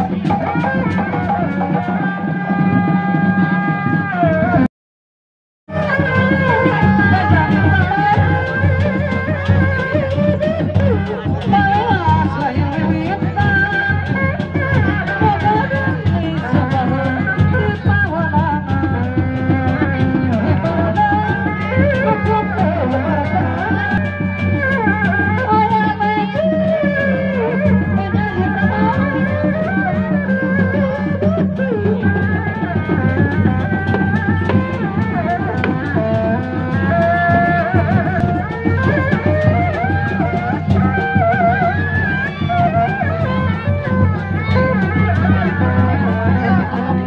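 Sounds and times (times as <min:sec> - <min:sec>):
shawm melody: 0:00.0 - 0:04.7, 0:05.7 - 0:47.0
steady drumming: 0:00.0 - 0:04.7, 0:05.7 - 0:47.0.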